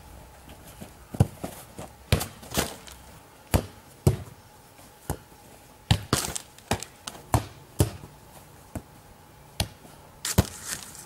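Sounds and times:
foot kicking football: 0.5s - 4.4s, 5.9s - 8.9s.

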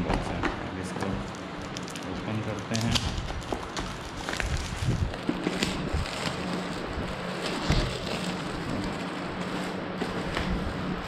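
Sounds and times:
plastic shrink-wrap crinkling: 1.1s - 11.0s.

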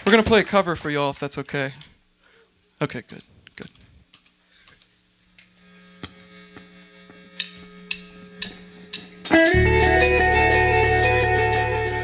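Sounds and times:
amplifier hum: 5.1s - 12.0s
faint held instrument notes: 6.2s - 12.0s.

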